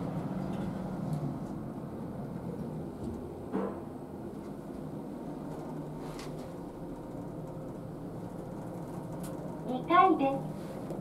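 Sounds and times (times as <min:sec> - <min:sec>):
elevator hum and rumble: 0:00.0 - 0:11.0.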